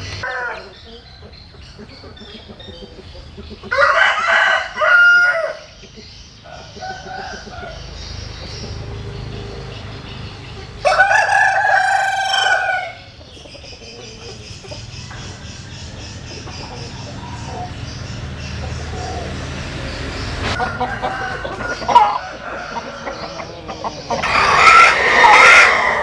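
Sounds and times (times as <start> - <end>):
rooster crowing: 0.2 - 0.8, 3.7 - 5.8, 10.8 - 13.1, 20.6 - 26.0.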